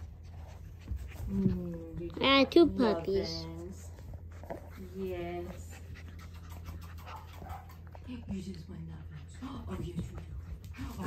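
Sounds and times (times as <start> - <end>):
puppy sniffing and breathing: 0.0 - 11.0.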